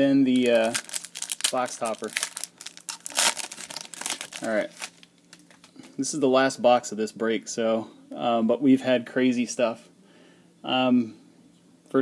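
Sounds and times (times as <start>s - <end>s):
foil wrapper crinkling: 0.3s - 5.9s.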